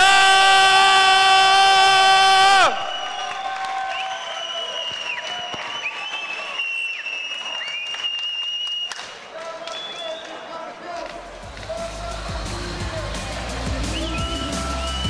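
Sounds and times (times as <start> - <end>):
long shrill whistles: 0.0 - 9.0, 13.8 - 15.0
crowd applauding and cheering: 0.0 - 15.0.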